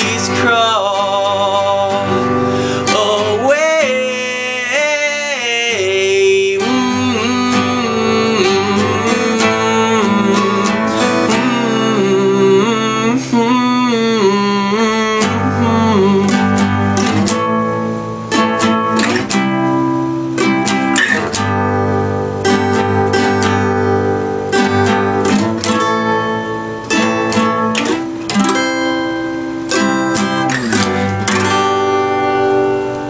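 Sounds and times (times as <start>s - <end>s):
acoustic guitar strumming chords: 0.0s - 33.0s.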